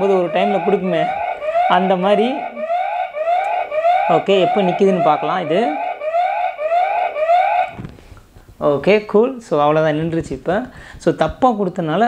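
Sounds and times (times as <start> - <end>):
electronic siren alarm: 0.0 - 7.8.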